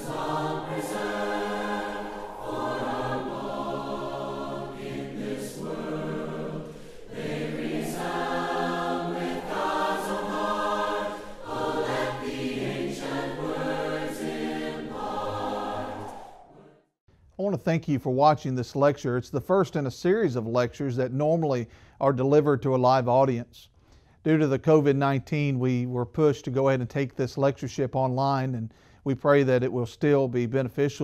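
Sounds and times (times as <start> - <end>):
choir singing held chords: 0.0 - 17.0.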